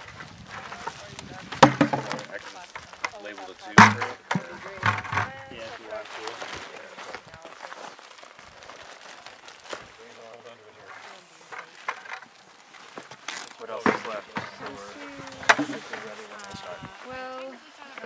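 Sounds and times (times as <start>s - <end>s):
people talking indistinctly: 0.6s - 7.9s, 13.3s - 18.0s.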